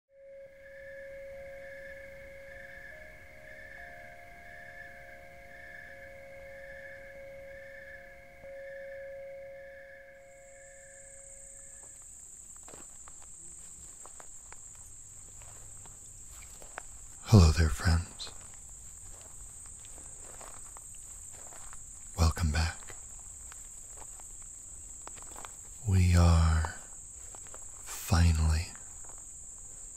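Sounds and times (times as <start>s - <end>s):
steady low and high tones: 0.2s - 12.0s, 17.2s - 18.5s, 25.8s - 26.9s
crickets trilling: 0.4s - 29.9s
footsteps on gravel: 11.8s - 29.9s.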